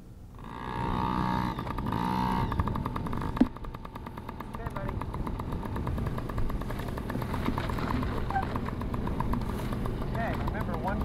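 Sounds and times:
motorcycle engine revving: 0.3 - 11.0.

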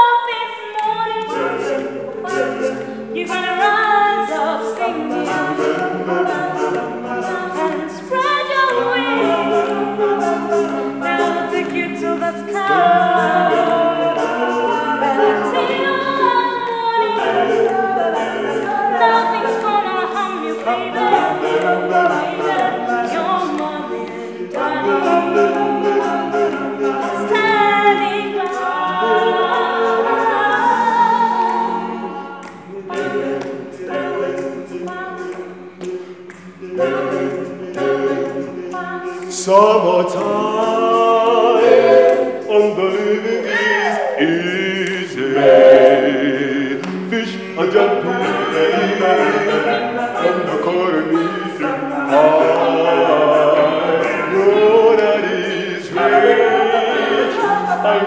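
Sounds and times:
woman singing lead: 0.0 - 35.8, 37.9 - 39.4, 41.6 - 46.7
choir singing harmony: 0.0 - 58.0
short sharp beat: 44.2 - 47.3.

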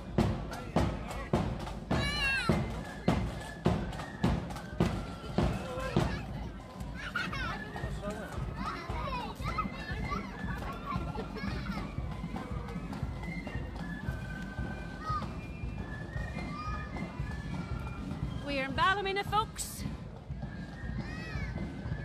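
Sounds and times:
street crowd chatter: 0.0 - 22.0
children calling and shouting: 1.6 - 18.4, 19.6 - 22.0.

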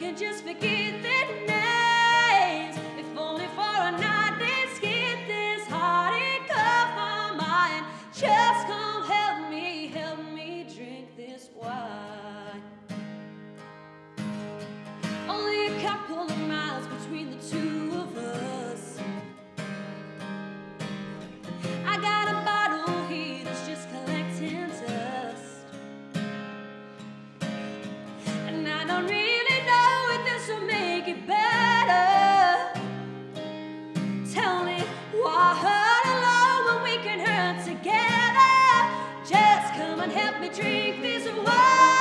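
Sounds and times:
woman singing country ballad: 0.0 - 13.0, 15.0 - 19.4, 21.4 - 25.9, 28.1 - 42.0
strummed acoustic guitar: 0.0 - 42.0.

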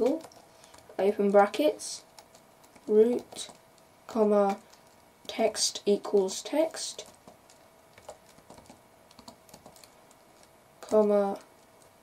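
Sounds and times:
typing on computer keyboard: 0.0 - 3.6, 6.1 - 10.2.

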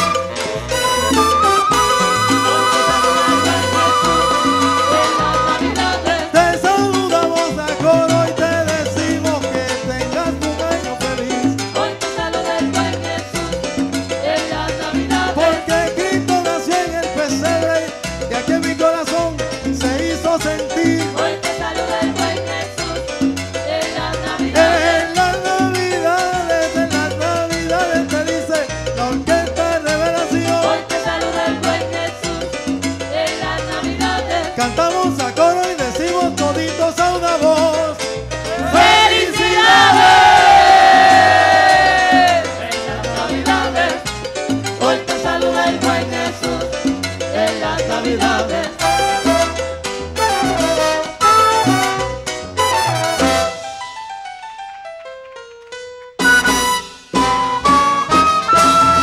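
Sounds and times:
held chord sliding downward: 0.0 - 5.7
lead vocal singing: 0.0 - 44.1, 44.7 - 49.6
bass line: 0.0 - 53.8, 56.2 - 59.0
congas: 0.0 - 59.0
salsa band playing: 0.0 - 59.0.

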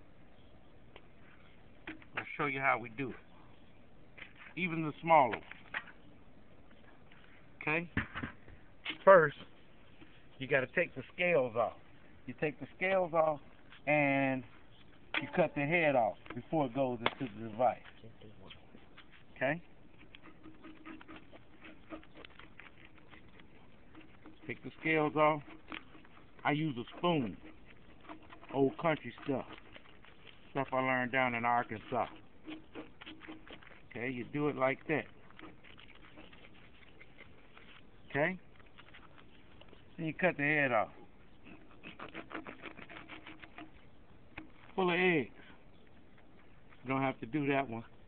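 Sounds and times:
spoon scraping fish scales: 12.6 - 45.0
knife cutting through fish: 41.7 - 43.8.

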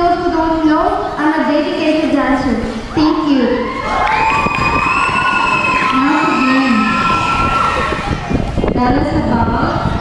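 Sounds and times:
audience cheering and shouting: 3.3 - 8.7.

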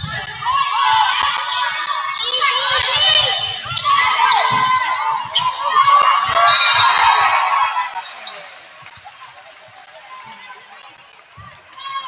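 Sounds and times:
spectators shouting and talking: 0.0 - 12.0.

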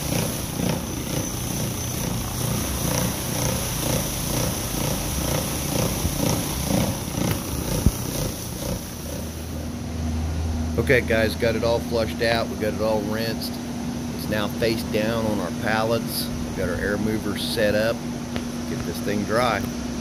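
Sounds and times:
rotary brush machine scrubbing: 0.0 - 9.8
steady low hum: 0.0 - 20.0.

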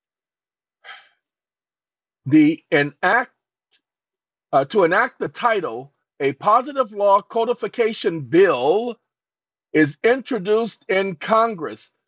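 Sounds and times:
man breathing: 0.9 - 1.2
man speaking: 2.3 - 3.3, 4.6 - 9.0, 9.8 - 11.9.

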